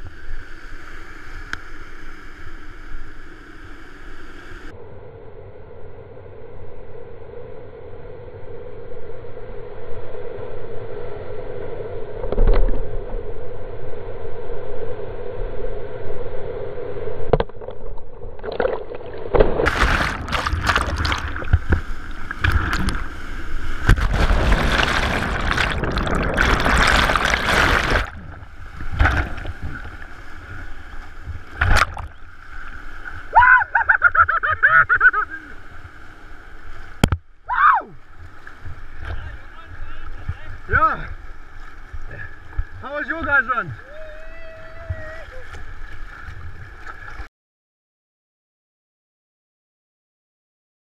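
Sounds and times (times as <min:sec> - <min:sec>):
water splashes: 0:17.4 - 0:47.3
person calling out: 0:43.7 - 0:45.5.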